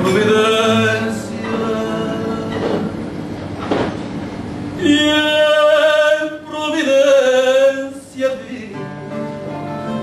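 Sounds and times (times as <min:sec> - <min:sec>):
man singing: 0:00.0 - 0:02.9, 0:04.8 - 0:09.2
room noise: 0:00.0 - 0:10.0
guitars playing: 0:08.7 - 0:10.0.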